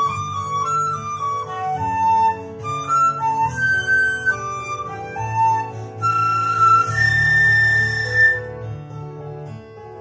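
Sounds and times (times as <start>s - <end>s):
flute holding a high note: 0.0s - 8.6s
instrumental accompaniment: 0.0s - 10.0s.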